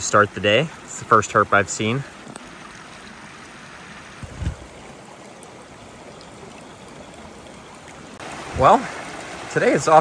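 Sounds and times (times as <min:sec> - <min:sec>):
creek water rushing: 0:00.0 - 0:10.0.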